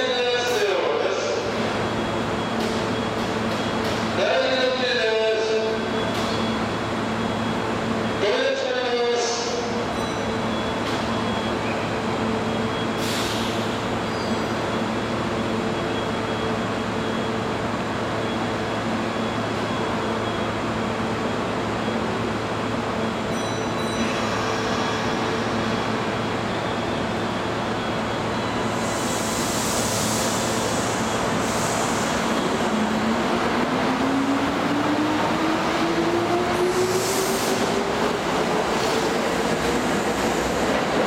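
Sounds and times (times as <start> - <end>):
echoing station ambience: 0.0 - 41.0
train hiss: 13.0 - 13.8, 28.7 - 32.4, 36.8 - 37.8.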